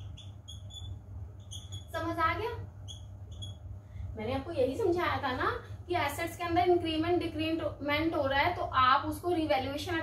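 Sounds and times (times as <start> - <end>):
marker squeaking on whiteboard: 0.0 - 3.7
steady low hum: 0.0 - 10.0.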